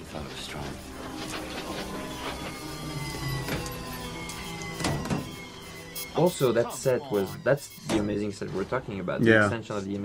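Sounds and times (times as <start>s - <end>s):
music with low held tones: 0.0s - 10.0s
thin whine falling in pitch: 1.5s - 7.9s.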